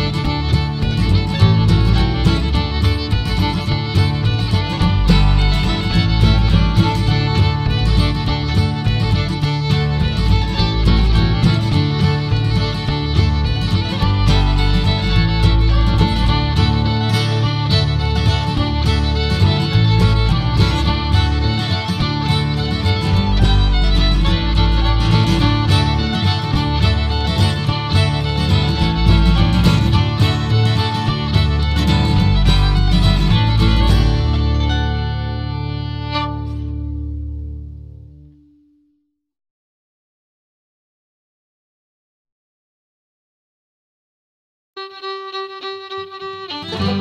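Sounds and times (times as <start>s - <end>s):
fiddle tune: 0.0s - 38.3s, 44.8s - 47.0s
low bass line: 0.0s - 38.6s
guitar accompaniment: 0.0s - 38.7s, 44.8s - 47.0s.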